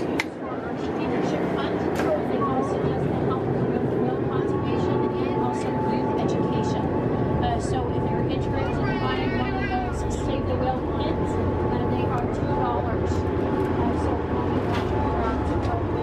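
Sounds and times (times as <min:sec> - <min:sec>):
boat engines droning: 0:00.0 - 0:16.0
passengers chattering: 0:00.0 - 0:16.0.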